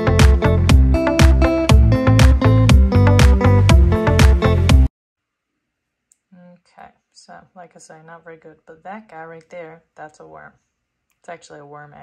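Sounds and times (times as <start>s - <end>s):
woman's voice: 6.3s - 10.6s, 11.3s - 12.0s.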